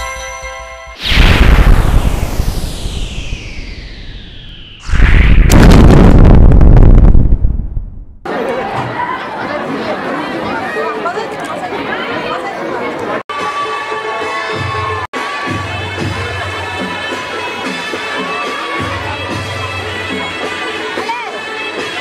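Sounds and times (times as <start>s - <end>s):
music: 0.0s - 1.0s, 13.3s - 22.0s
loud booming sound effect: 1.0s - 8.2s
crowd shouting and cheering: 8.2s - 19.7s.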